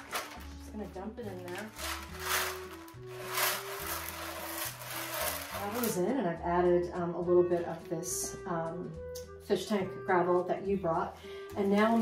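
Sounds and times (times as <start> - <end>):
background music: 0.0 - 12.0
gravel pouring into tray: 1.6 - 6.0.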